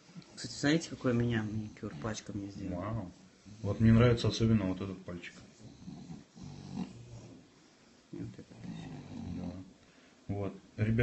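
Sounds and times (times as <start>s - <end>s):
dog's low drawn-out vocalizing: 5.4s - 7.6s, 8.2s - 9.8s.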